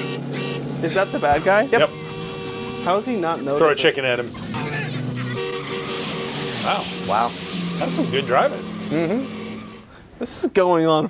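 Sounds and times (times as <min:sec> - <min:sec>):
trucks driving fast on dirt: 0:00.0 - 0:10.0
held music notes: 0:00.0 - 0:10.1.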